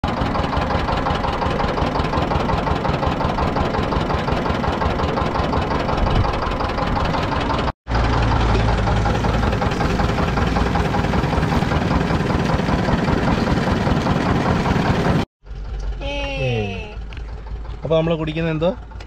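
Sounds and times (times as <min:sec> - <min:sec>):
crushing machine engine knocking: 0:00.0 - 0:15.9, 0:17.0 - 0:19.0.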